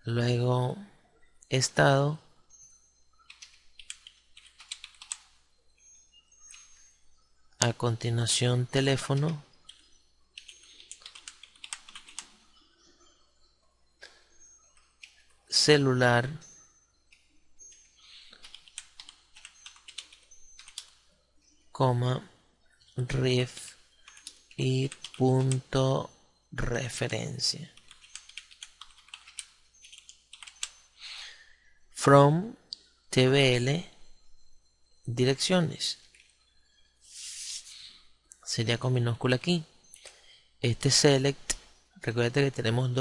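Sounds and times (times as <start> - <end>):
computer keyboard typing: 3.2 - 5.4, 9.1 - 12.4, 17.1 - 21.0, 24.0 - 25.7, 27.7 - 30.8, 36.0 - 36.4.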